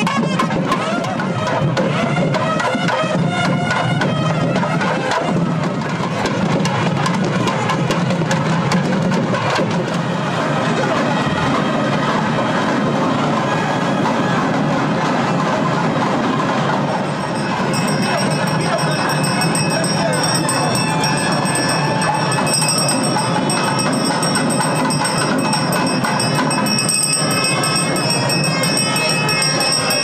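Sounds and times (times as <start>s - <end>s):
rapid drum strokes: 0.0s - 30.0s
loud reed melody: 16.8s - 30.0s.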